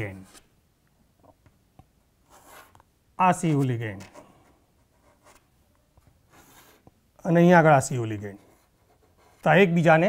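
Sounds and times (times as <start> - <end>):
chalk stroke on chalkboard: 6.3 - 6.9.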